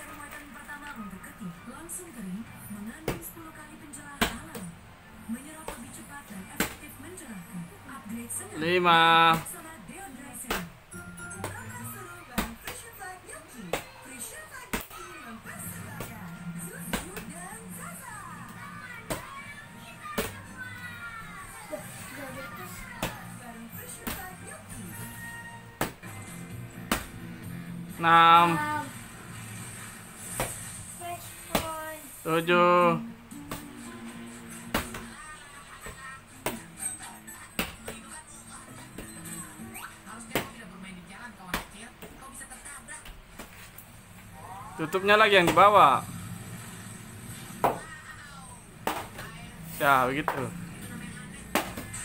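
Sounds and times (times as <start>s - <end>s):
music: 0.0s - 41.0s, 44.0s - 52.0s.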